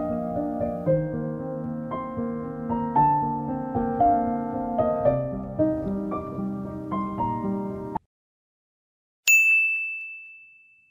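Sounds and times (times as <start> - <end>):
bell-like ding: 9.3 - 10.9.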